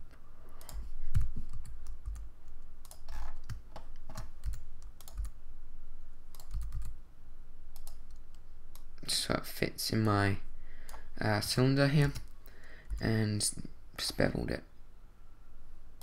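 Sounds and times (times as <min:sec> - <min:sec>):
keyboard keys clicking: 0:00.6 - 0:05.4, 0:06.3 - 0:06.9.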